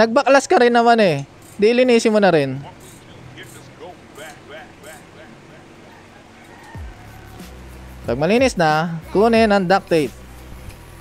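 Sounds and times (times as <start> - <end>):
steady low hum: 1.1 - 11.0
rag squeaking on bicycle rim: 1.3 - 2.0, 2.6 - 7.4.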